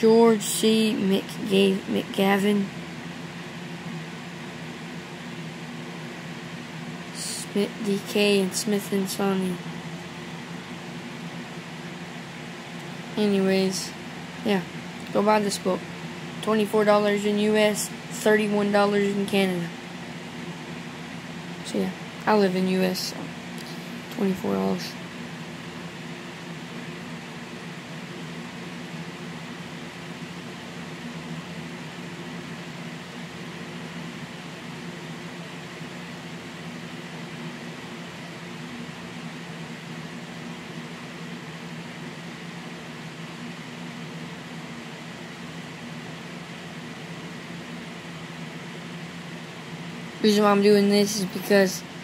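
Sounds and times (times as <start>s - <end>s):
low hum with hiss: 0.0s - 52.0s.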